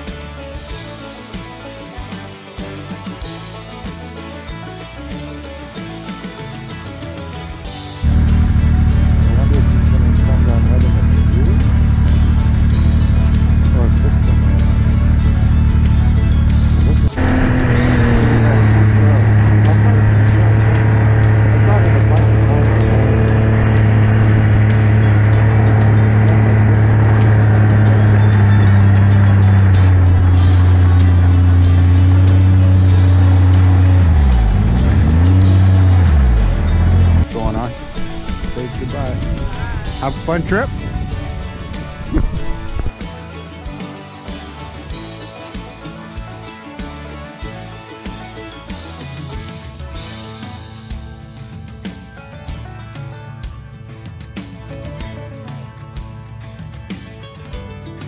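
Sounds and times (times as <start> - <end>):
snowmobile engine running: 8.0 - 42.9.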